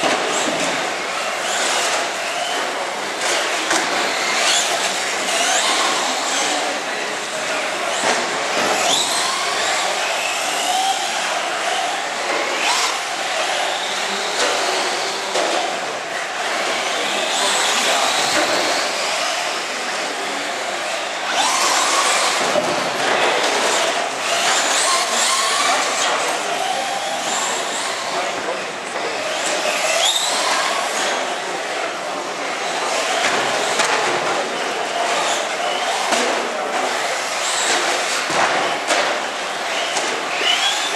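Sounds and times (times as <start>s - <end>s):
people talking: 0.0s - 40.9s
electric motors whining: 0.2s - 22.6s, 23.2s - 33.8s, 39.4s - 40.9s.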